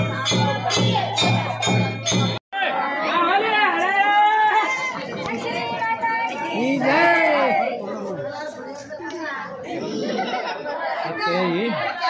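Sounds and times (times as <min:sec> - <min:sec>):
music with steady beat: 0:00.0 - 0:02.4
women's voices talking: 0:02.9 - 0:12.0.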